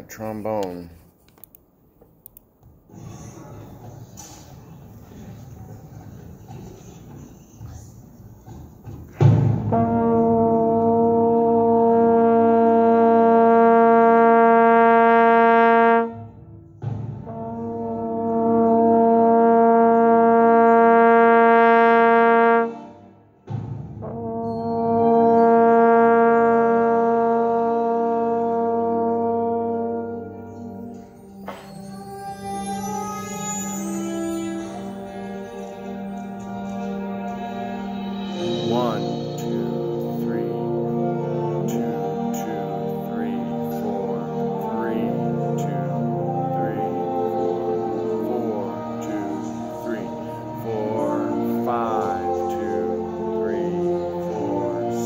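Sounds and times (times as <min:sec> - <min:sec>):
trombone long held notes: 0:09.3 - 0:23.3, 0:24.0 - 0:55.0.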